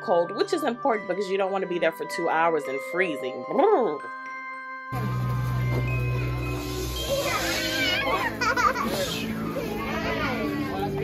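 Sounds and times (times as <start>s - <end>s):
music playing: 0.0s - 11.0s
baby squealing and babbling: 7.0s - 10.7s.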